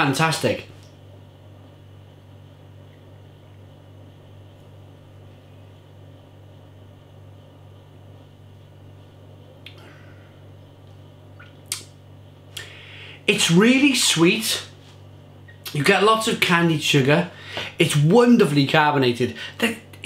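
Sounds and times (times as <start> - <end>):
steady low hum: 0.0 - 20.0
faint mouth clicks: 11.4 - 11.9.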